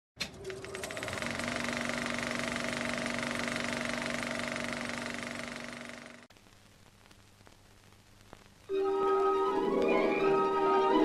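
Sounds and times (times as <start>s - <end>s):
film projector clatter: 0.2s - 6.3s
projector motor hum: 0.2s - 6.3s.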